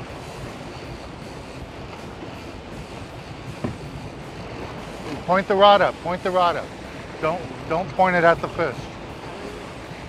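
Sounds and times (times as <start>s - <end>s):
boat engine rumble: 0.0s - 10.0s
sea noise: 0.0s - 10.0s
wind: 0.0s - 10.0s
short knock: 3.6s - 3.8s.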